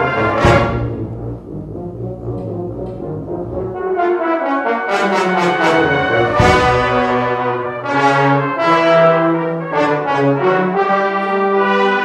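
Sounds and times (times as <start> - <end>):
brass band playing low notes: 0.0 - 12.0.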